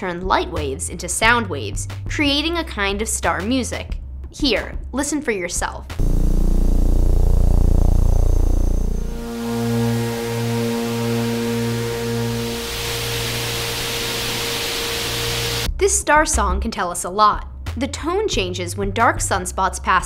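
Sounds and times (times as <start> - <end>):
low drone: 6.0 - 15.7
steady low tones: 6.0 - 15.7
hiss: 9.4 - 15.7.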